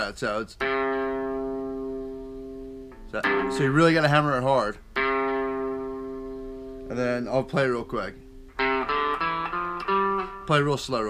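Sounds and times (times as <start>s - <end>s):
electric guitar picked notes: 0.6s - 11.0s.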